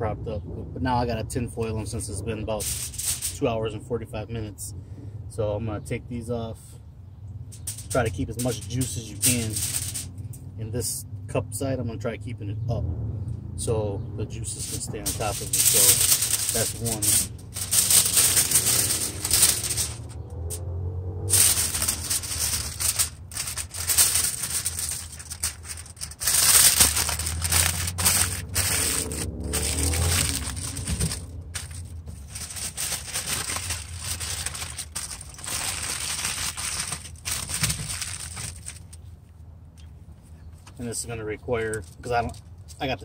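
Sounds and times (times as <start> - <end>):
aluminium foil crinkling: 2.1 - 3.5, 7.5 - 10.2, 14.5 - 20.6, 21.2 - 39.0.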